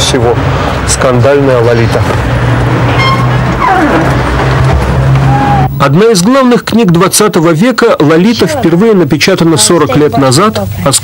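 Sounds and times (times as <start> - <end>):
vehicle passing by: 0.0 - 5.8
car engines humming: 0.0 - 6.0.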